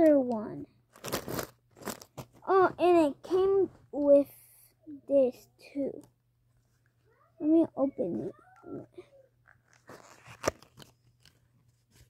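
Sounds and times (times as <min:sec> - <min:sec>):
cardboard crackling: 0:01.0 - 0:02.4.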